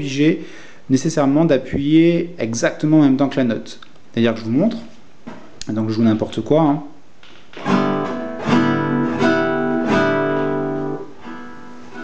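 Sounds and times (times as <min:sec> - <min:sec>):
guitar strumming chords: 0:07.6 - 0:12.0.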